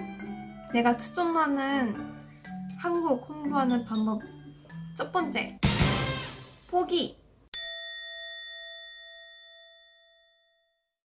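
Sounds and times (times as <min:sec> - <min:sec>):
bell-like ding: 0:07.6 - 0:10.9.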